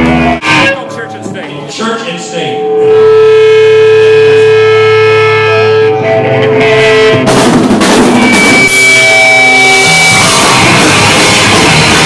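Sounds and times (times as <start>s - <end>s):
electric guitar feedback tone: 0.0s - 12.0s.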